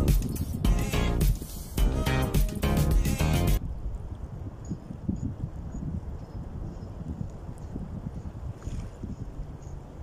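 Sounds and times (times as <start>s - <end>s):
wind buffeting microphone: 0.0s - 0.8s, 3.6s - 10.0s.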